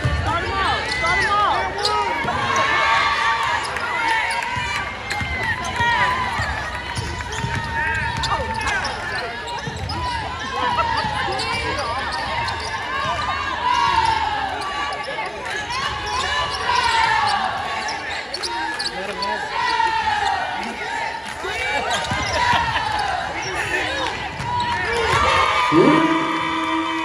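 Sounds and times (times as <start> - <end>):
sneakers squeaking: 0.0 - 20.8, 21.7 - 25.9
basketball bouncing on court: 4.3 - 14.2
voices calling out: 8.1 - 27.0.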